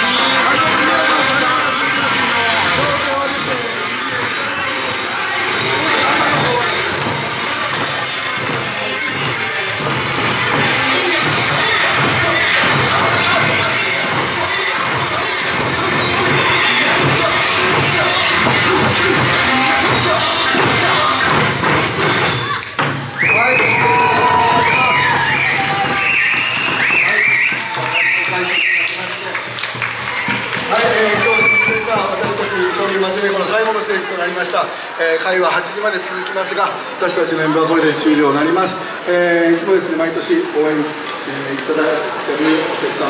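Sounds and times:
festival music: 0.0s - 33.2s
crowd cheering and shouting: 0.0s - 43.0s
voices: 0.0s - 43.0s
drums struck: 2.6s - 28.6s, 29.8s - 32.8s
shrill finger whistle: 23.2s - 29.2s, 31.1s - 32.0s.

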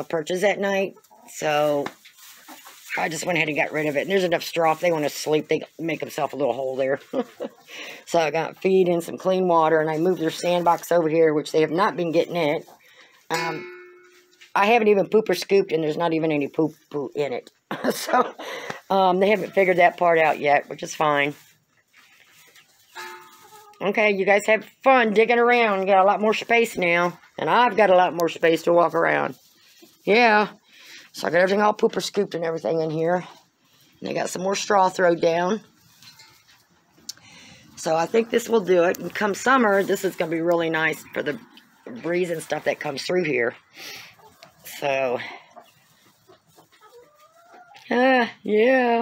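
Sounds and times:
chicks scratching in straw: 0.0s - 13.3s, 14.0s - 49.0s.

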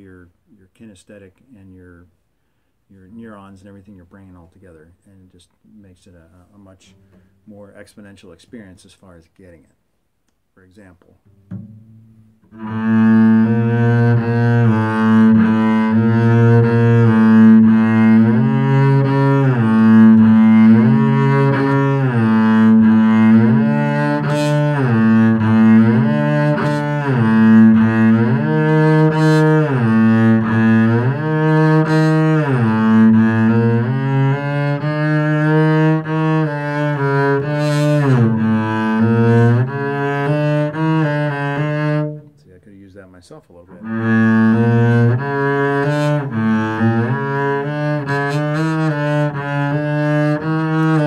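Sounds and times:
bowed double bass sliding: 11.3s - 43.0s, 43.6s - 51.0s.

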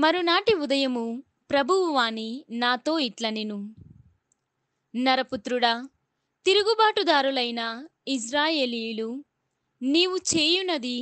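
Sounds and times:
woman reading aloud: 0.0s - 3.8s, 5.0s - 5.9s, 6.5s - 9.2s, 9.8s - 11.0s.

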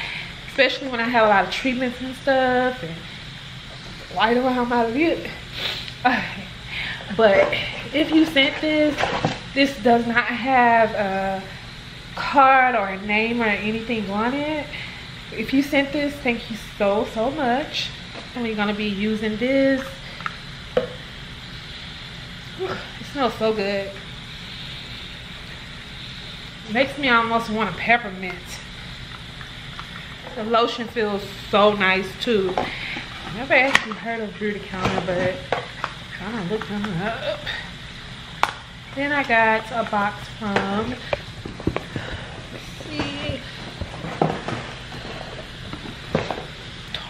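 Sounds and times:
room noise hiss: 0.0s - 47.0s.

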